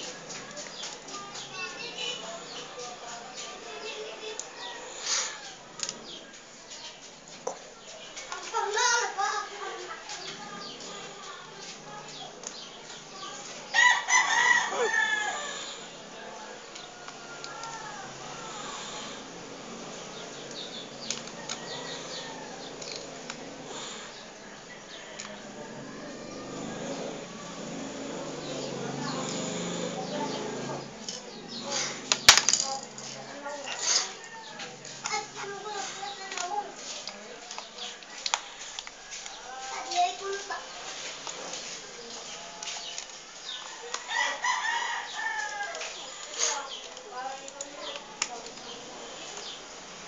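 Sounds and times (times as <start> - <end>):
rooster crowing: 13.7 - 15.9, 21.3 - 22.9, 24.6 - 30.8, 43.6 - 46.2
high scraping and rubbing: 32.9 - 42.9.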